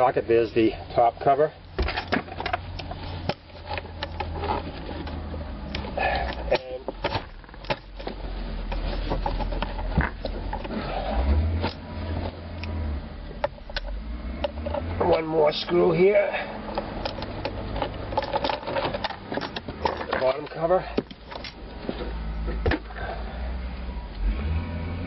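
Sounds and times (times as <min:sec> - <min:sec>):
socket tool handling: 0:01.7 - 0:10.8, 0:16.6 - 0:22.9.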